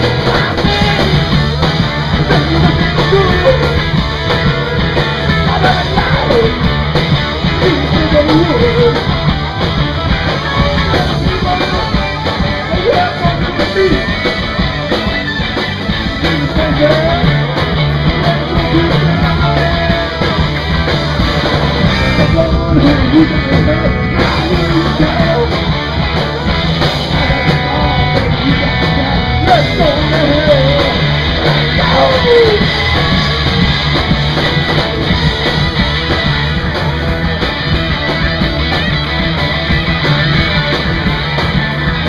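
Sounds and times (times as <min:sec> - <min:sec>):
live rock band playing: 0:00.0 - 0:42.0.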